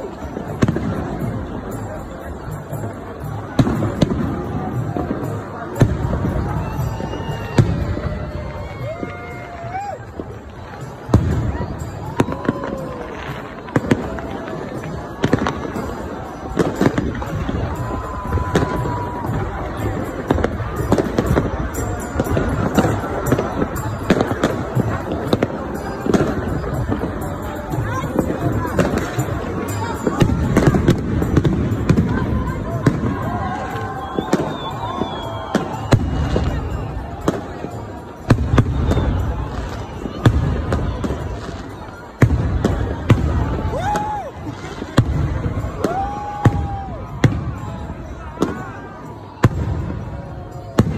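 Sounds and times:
crowd voices: 0:00.0 - 0:50.9
fireworks bangs: 0:00.0 - 0:50.9.

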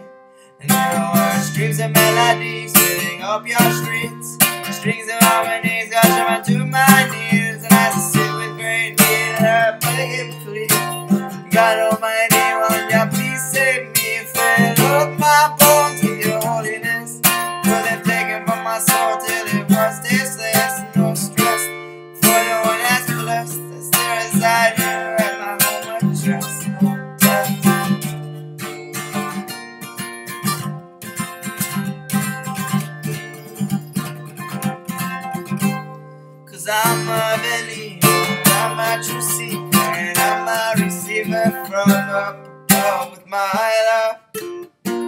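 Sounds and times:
acoustic guitar strumming: 0:00.0 - 0:45.0.

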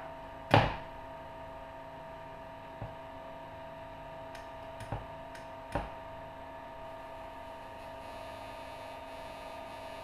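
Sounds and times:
electrical hum with high tones: 0:00.0 - 0:10.0.

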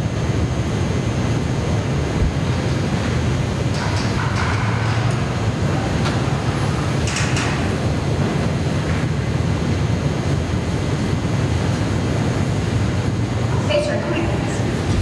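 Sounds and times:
low mechanical drone: 0:00.0 - 0:15.0.

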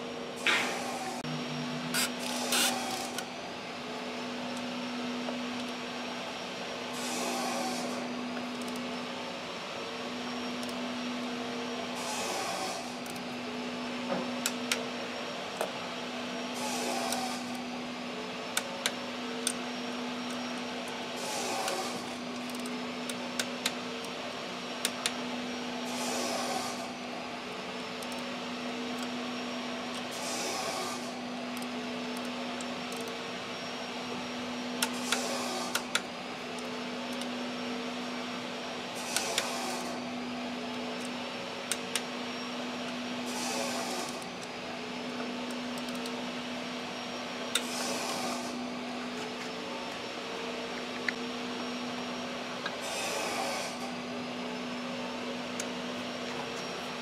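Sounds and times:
workshop hum: 0:00.0 - 0:57.0.

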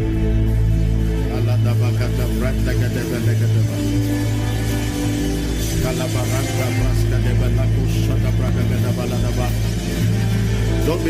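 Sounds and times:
soft worship music: 0:00.0 - 0:11.0.

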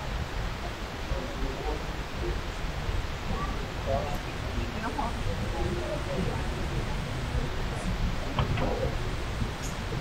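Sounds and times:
steady hall hum: 0:00.0 - 0:10.0.

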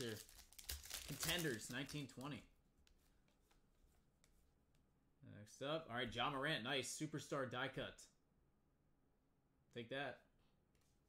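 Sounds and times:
cards ticking as flipped: 0:00.0 - 0:02.4.

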